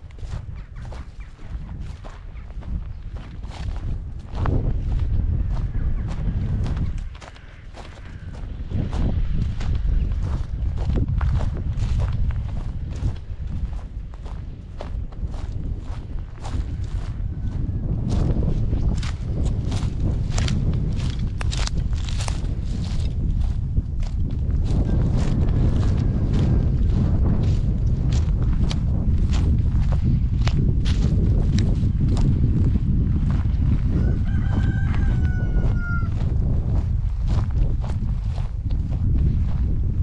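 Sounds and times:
footsteps crunching over dry brush: 0.0s - 40.0s
steady low rumble: 0.0s - 40.0s
rooster crowing: 33.8s - 36.3s.

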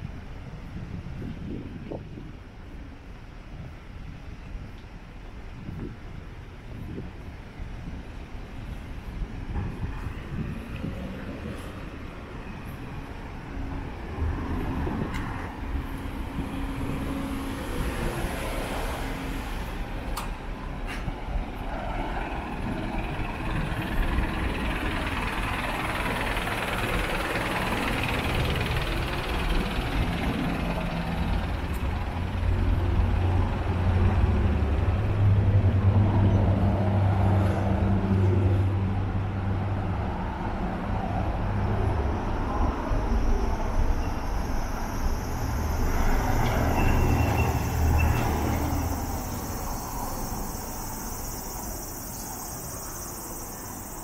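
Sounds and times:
heavy vehicle engine drone: 0.0s - 54.0s
vehicles passing: 0.0s - 54.0s.

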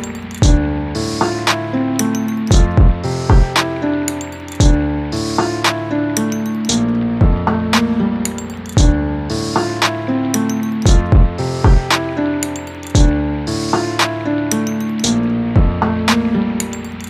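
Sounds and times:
hi-hat rolls: 0.0s - 15.2s
synth chords: 0.0s - 17.0s
sliding bass kicks: 0.4s - 1.7s, 2.5s - 3.7s, 4.6s - 5.8s, 6.8s - 8.0s, 8.8s - 10.0s, 10.9s - 12.1s, 13.0s - 14.0s, 15.1s - 16.5s.

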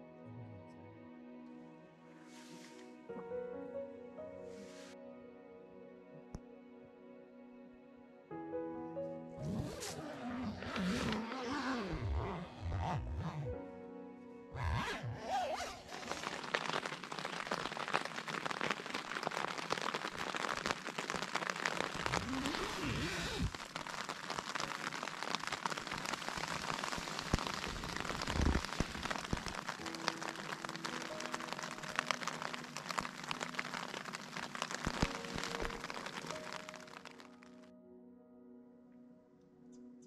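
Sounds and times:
background music: 0.0s - 20.0s, 21.0s - 40.0s
rain pattering on tent: 9.6s - 13.4s, 14.6s - 37.7s.

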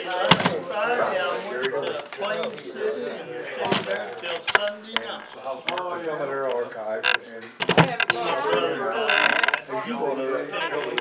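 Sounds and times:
indistinct conversation: 0.0s - 11.0s.

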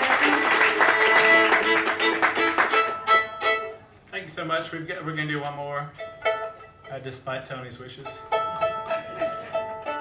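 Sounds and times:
fiddle playing: 0.0s - 4.0s, 5.9s - 7.3s, 8.0s - 10.0s.

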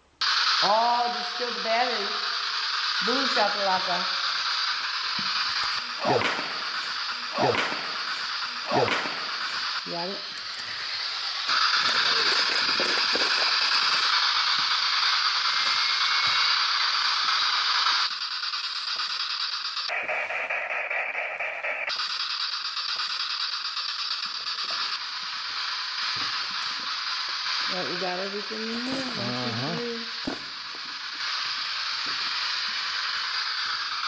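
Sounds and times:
electronic static hiss: 0.0s - 34.0s.

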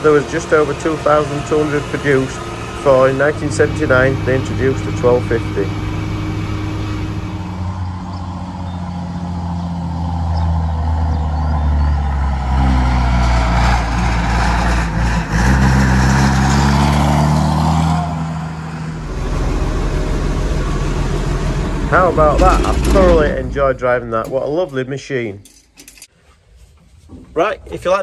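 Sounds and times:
tractor diesel engine running: 0.0s - 24.9s.

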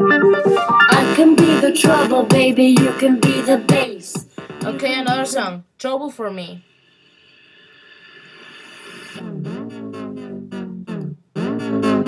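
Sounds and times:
electronic dance-pop song: 0.0s - 5.5s.

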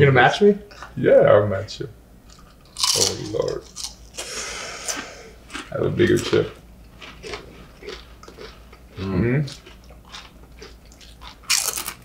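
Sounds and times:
tortilla chips crunching: 2.3s - 4.0s, 7.0s - 12.0s.

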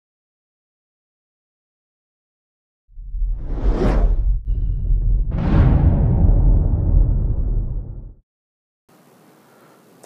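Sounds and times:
deep rumble: 2.9s - 8.2s
rushing whoosh sweep: 3.1s - 4.6s.

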